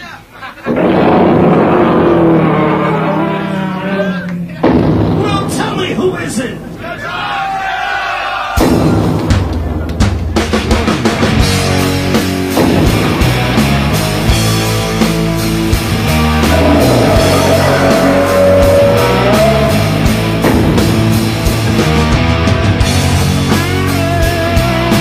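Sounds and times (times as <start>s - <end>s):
rock band with distorted guitar: 0.6s - 5.7s, 8.6s - 25.0s
audience shouting: 6.3s - 9.1s, 16.2s - 20.2s.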